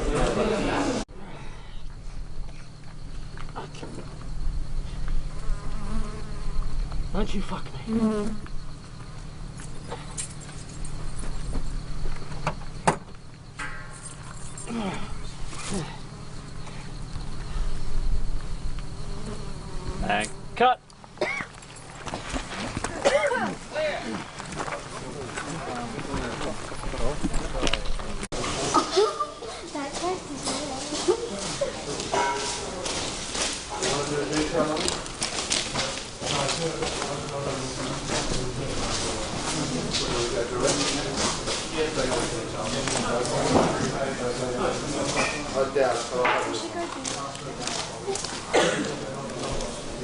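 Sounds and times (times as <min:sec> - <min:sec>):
flies buzzing: 0:01.6 - 0:23.8
children's voices: 0:28.5 - 0:32.3.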